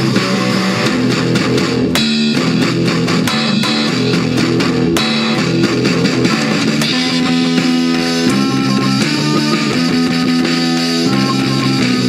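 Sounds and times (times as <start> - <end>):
drums: 0.0 - 12.0
electric guitar sustained notes: 0.0 - 12.0.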